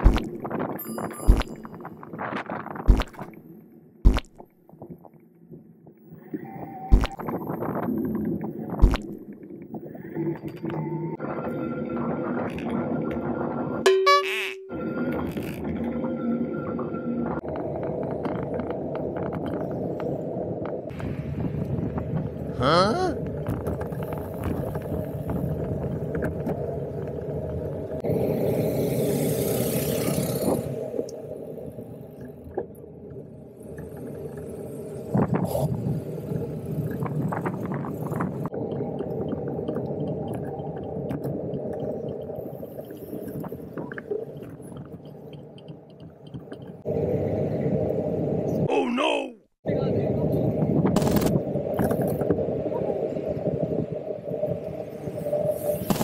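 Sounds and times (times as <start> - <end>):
bicycle tyre and wind rumble: 0.0 - 13.9, 14.7 - 48.7, 49.6 - 56.0.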